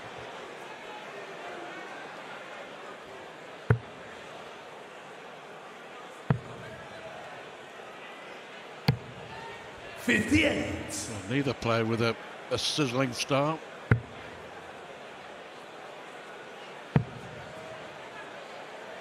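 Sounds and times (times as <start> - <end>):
background noise: 0.0 - 19.0.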